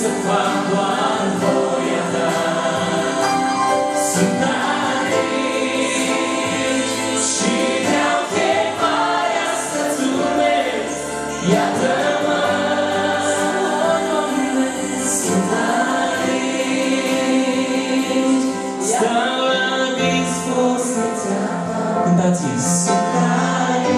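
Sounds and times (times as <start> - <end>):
choir singing along: 0.0 - 23.9
male-female duet singing: 0.0 - 23.9.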